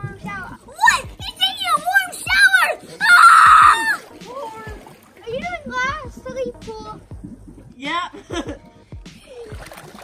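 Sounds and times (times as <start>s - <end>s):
children's voices: 0.0s - 7.0s
pool water splashing: 0.0s - 10.0s.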